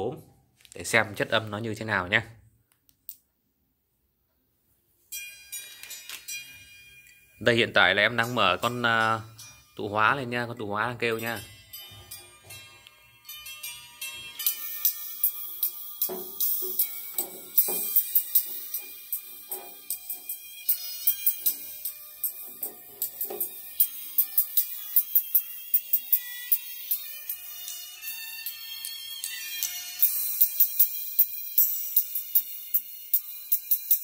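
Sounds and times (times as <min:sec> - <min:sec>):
thin treble-heavy music from tweeter: 0:05.1 - 0:34.0.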